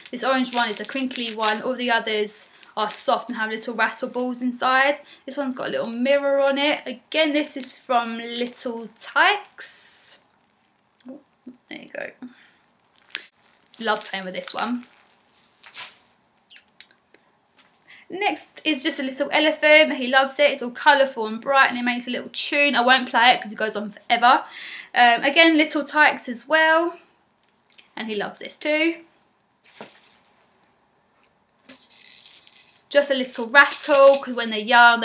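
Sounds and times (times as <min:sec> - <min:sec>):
plastic baby rattle shaking: 0:00.0 - 0:04.3, 0:13.1 - 0:15.0, 0:31.7 - 0:32.9
toys handled with soft rustles: 0:29.6 - 0:32.2.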